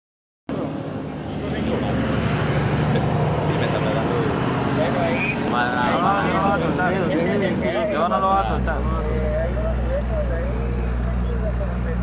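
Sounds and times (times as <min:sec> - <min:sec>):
road traffic rumble: 0:00.5 - 0:12.0
people talking: 0:01.3 - 0:12.0.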